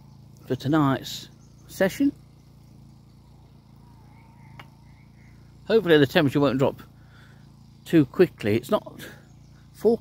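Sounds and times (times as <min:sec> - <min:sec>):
portable generator running: 0:00.0 - 0:10.0.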